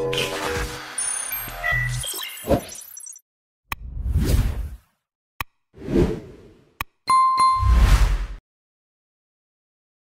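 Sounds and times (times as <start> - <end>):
bell-like ding: 7.1 - 7.8.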